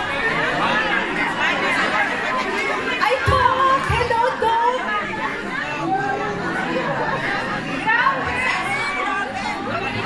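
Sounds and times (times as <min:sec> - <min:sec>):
chatter of many people: 0:00.0 - 0:10.0.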